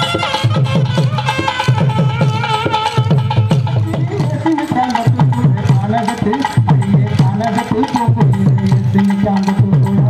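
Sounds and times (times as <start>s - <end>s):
folk dance music with drums: 0.0s - 10.0s.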